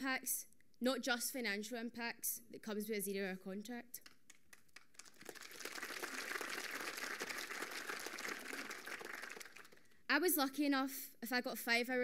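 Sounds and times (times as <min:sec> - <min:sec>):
audience applauding: 0:04.7 - 0:09.9.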